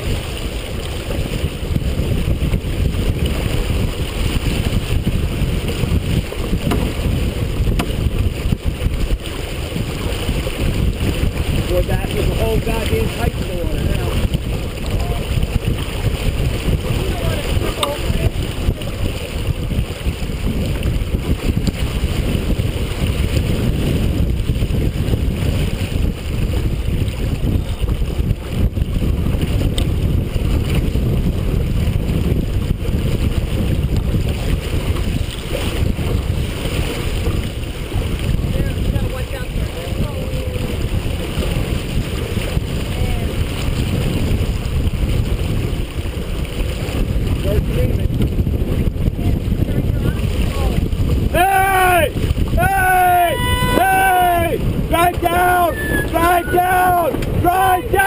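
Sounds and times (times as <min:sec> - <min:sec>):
water splashing along hull: 0:00.0 - 0:58.0
wind buffeting microphone: 0:00.0 - 0:58.0.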